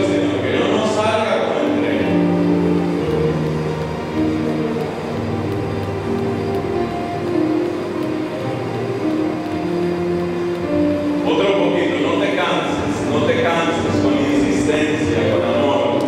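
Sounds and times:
electronic keyboard chords: 0:00.0 - 0:16.0.

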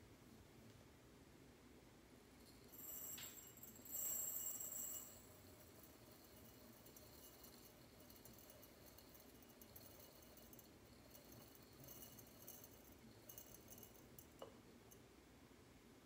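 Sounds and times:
rice pouring into glass jar: 0:02.4 - 0:14.6
small clink: 0:02.4 - 0:15.0.

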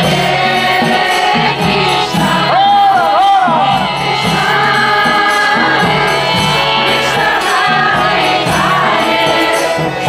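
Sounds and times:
group singing a devotional chant: 0:00.0 - 0:10.0
steady percussion beat: 0:00.0 - 0:10.0.

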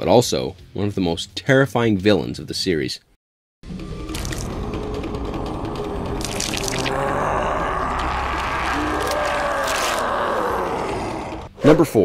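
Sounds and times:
eerie effects and music: 0:03.6 - 0:11.8.

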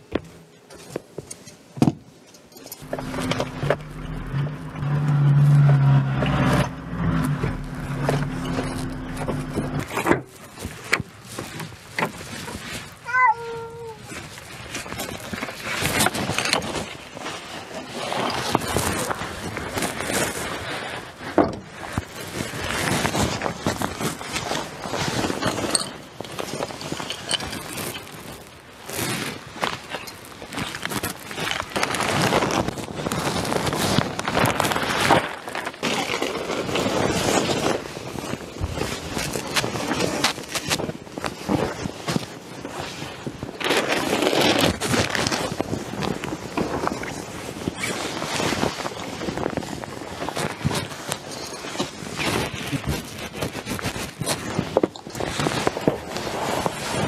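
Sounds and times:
gear rustling and scraping: 0:02.3 - 0:13.0, 0:14.2 - 0:57.0
footsteps on dry leaves: 0:02.8 - 0:09.9
plastic bag rustling: 0:02.8 - 0:13.0, 0:14.0 - 0:57.0.

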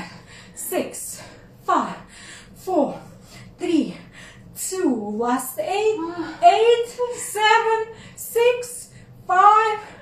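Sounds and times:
woman counting aloud: 0:04.7 - 0:10.0.

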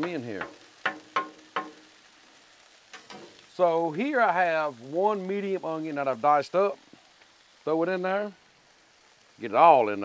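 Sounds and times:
metal spatulas tapping griddle: 0:00.0 - 0:01.8.

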